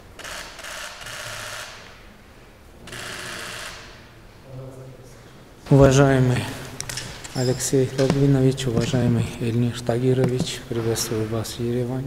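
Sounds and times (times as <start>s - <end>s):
camera shutters clicking rapidly: 0.2s - 1.8s.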